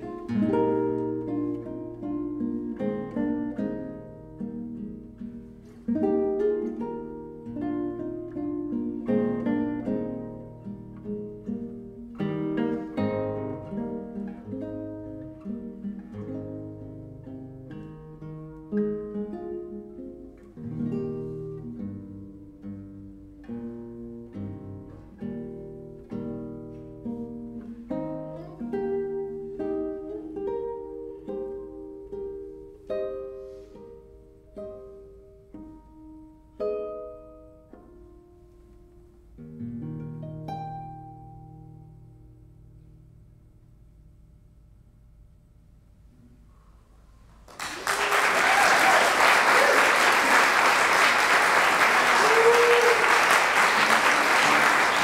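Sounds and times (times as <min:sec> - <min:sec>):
solo classical guitar: 0:00.0 - 0:47.6, 0:53.2 - 0:55.0.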